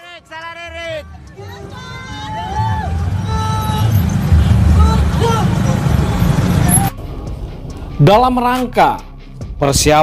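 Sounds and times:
loud low rumble: 1.6 - 8.5.

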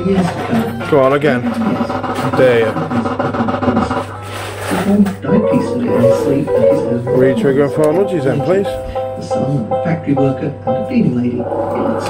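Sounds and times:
person talking: 4.7 - 12.0.

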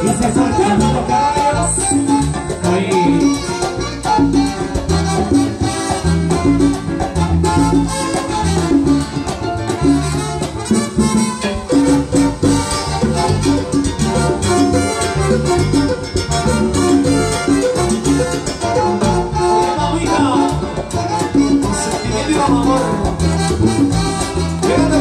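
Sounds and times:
bass line: 0.0 - 25.0
brass section: 0.0 - 25.0
congas and timbales: 0.0 - 25.0
salsa band playing: 0.0 - 25.0.

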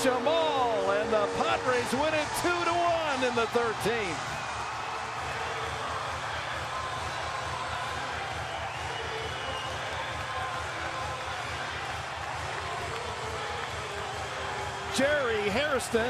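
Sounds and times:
crowd cheering: 0.0 - 16.0.

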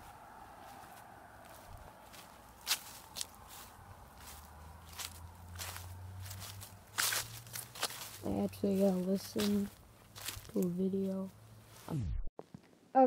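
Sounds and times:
footsteps in grass: 0.0 - 12.0.

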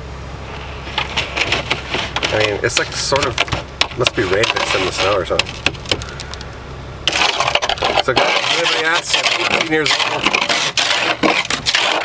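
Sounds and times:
truck engine rumble: 0.0 - 12.0.

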